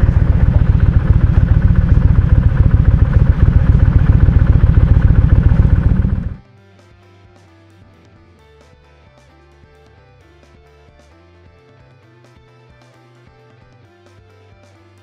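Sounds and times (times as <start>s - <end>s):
motorcycle engine running: 0.0s - 6.4s.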